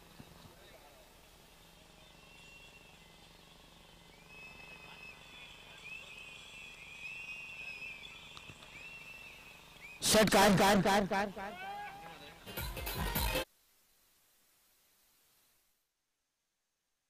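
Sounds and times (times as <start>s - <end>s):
high whistled tones: 4.0s - 10.0s.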